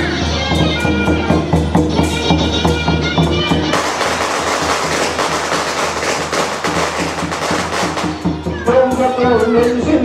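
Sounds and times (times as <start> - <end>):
drums: 0.0 - 10.0
clashing cymbals: 3.7 - 8.4.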